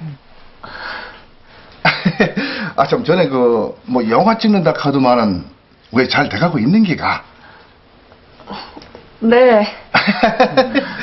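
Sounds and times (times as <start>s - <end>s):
person breathing: 0.6s - 1.8s, 2.4s - 2.8s.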